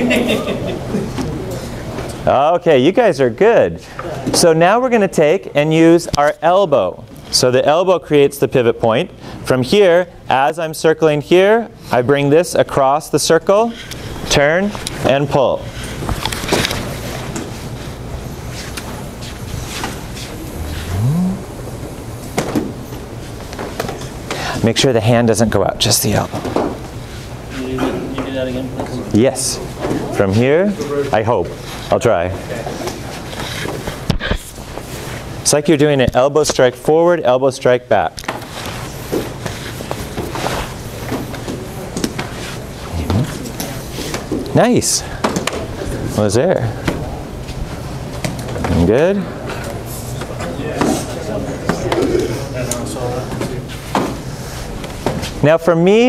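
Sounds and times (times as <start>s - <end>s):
large hall background noise: 0.0s - 56.0s
steady low hum: 11.6s - 35.5s, 38.0s - 50.4s
short rising hum: 19.0s - 22.4s.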